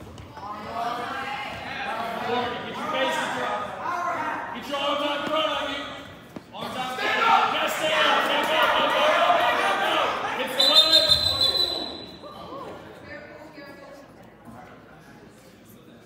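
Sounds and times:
people shouting in a gym: 0:00.4 - 0:12.9.

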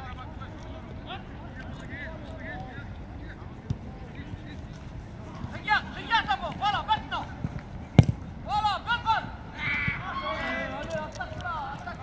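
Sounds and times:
football being kicked: 0:07.4 - 0:08.4.

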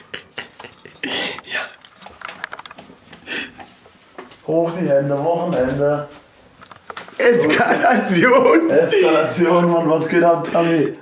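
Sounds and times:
small clicks and knocks: 0:01.4 - 0:04.4, 0:06.6 - 0:07.2.

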